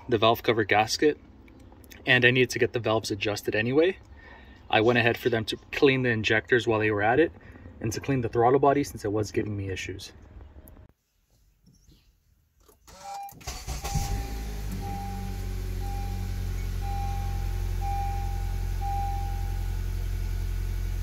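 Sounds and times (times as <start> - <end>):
car engine starting and idling: 12.6 - 21.0.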